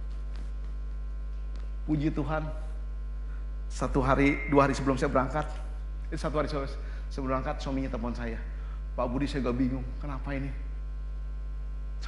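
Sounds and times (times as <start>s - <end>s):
low electrical mains hum: 0.0s - 12.0s
man speaking: 1.9s - 2.7s, 3.7s - 10.7s.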